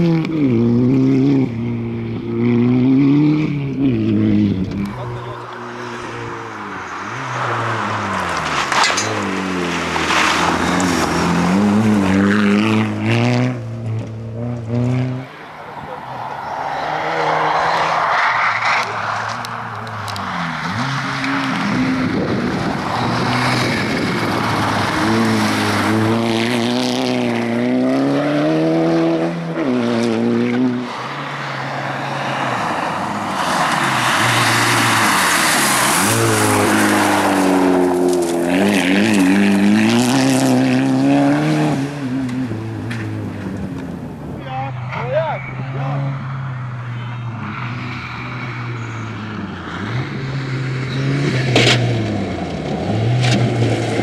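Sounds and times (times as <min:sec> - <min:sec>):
rally car engine revving: 0:00.0 - 0:54.0
tyres on gravel: 0:04.8 - 0:12.8, 0:31.4 - 0:40.3.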